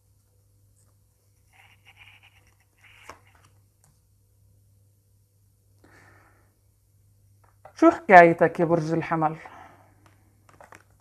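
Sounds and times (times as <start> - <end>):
cards rustling and scraping: 0.7 - 4.0, 10.0 - 11.0.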